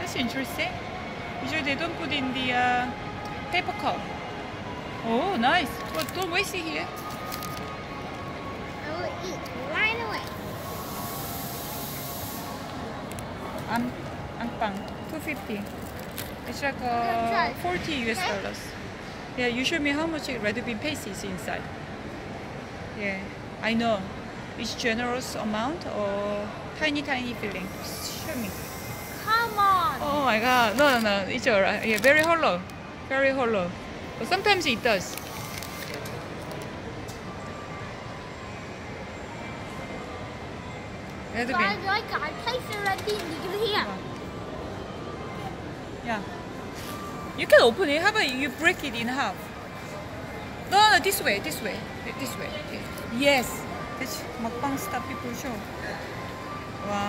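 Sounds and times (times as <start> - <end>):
shopping mall hum: 0.0 - 57.0
bright high hiss: 10.4 - 12.9
even hiss: 10.4 - 12.9.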